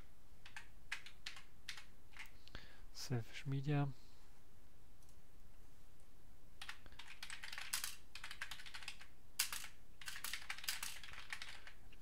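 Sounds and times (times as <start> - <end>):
typing on computer keyboard: 0.4 - 2.4, 6.6 - 11.8.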